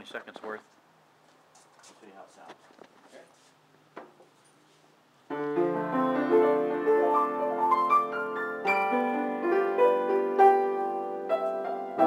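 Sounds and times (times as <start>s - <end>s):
grand piano playing: 5.3s - 12.0s.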